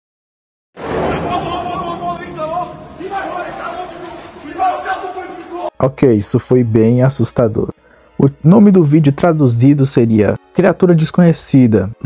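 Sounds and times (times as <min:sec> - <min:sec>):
people shouting: 0:00.9 - 0:05.7
man speaking: 0:01.0 - 0:12.0.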